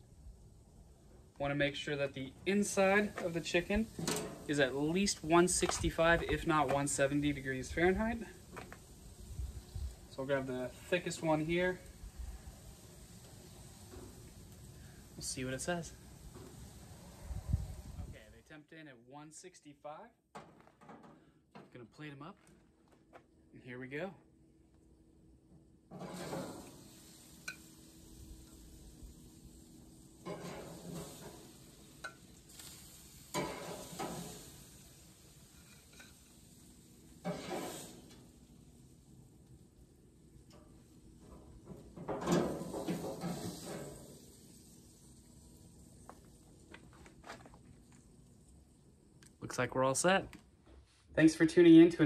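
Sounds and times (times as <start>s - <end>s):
metal tongs scraping a grill grate: 3.1s - 4.7s, 25.9s - 27.6s, 30.2s - 36.4s, 37.2s - 38.3s, 40.5s - 44.2s.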